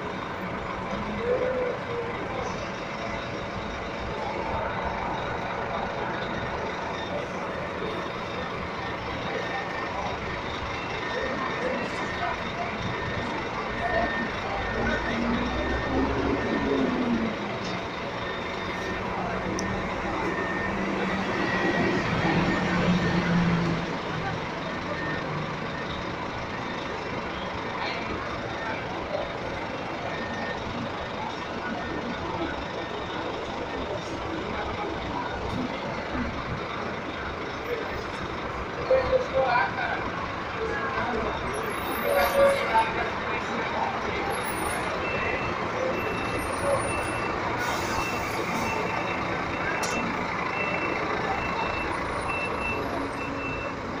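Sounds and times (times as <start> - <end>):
coach bus driving past: 0.0 - 54.0
reversing alarm beeping: 0.4 - 28.2, 40.6 - 54.0.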